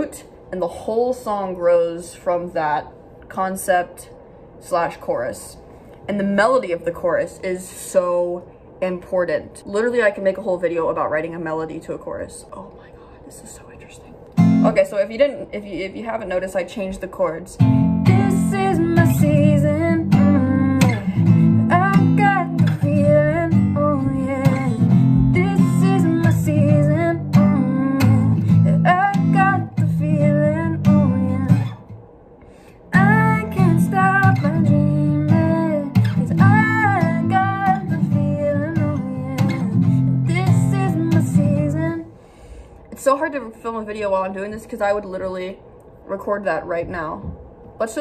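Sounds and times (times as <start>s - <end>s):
acoustic guitar strumming: 14.4s - 14.8s, 17.6s - 31.8s, 32.9s - 42.0s
woman singing: 16.8s - 31.8s, 32.9s - 42.1s.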